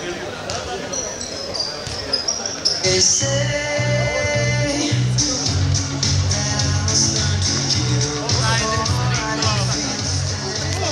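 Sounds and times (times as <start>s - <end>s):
crowd voices echoing: 0.0s - 10.9s
basketball bouncing on court: 0.4s - 1.0s, 1.8s - 2.7s.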